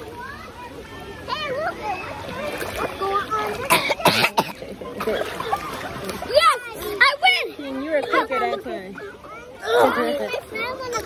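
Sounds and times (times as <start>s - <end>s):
faint children's voices: 0.0s - 11.0s
child coughing: 3.6s - 5.3s.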